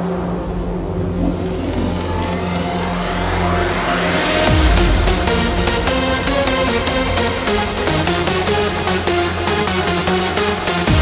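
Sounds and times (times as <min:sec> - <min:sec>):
bass line: 0:00.0 - 0:11.0
rising synth noise sweep: 0:00.0 - 0:11.0.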